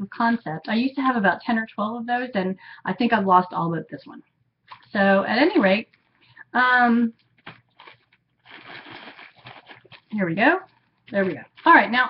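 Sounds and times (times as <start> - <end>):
hands rustling and handling: 7.2 - 12.0.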